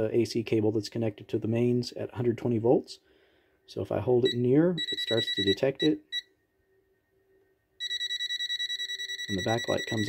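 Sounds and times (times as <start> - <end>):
multimeter buzzer beeping: 4.3 - 6.3, 7.8 - 10.0.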